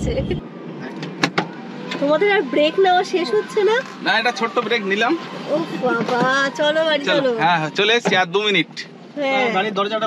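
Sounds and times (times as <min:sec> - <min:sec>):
people talking in a car: 0:00.0 - 0:10.0.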